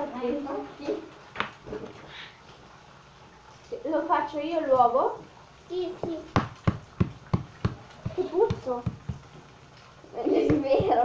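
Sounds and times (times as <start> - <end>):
knocks on stone countertop: 6.0 - 9.3.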